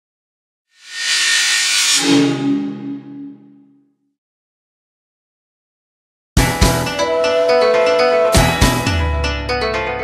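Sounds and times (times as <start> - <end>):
rushing whoosh: 0.8 - 3.8.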